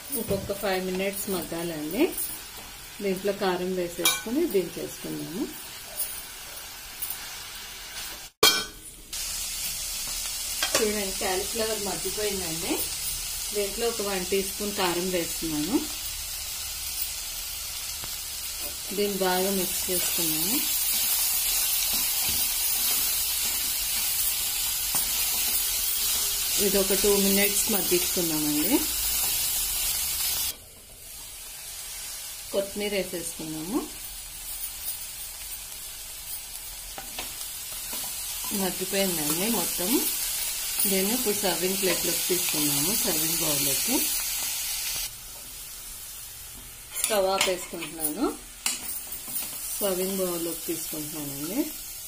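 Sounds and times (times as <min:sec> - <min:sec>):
vegetables sizzling in oil: 0:00.0 - 0:52.0
metal clink on pan: 0:04.0 - 0:04.3, 0:08.4 - 0:08.8.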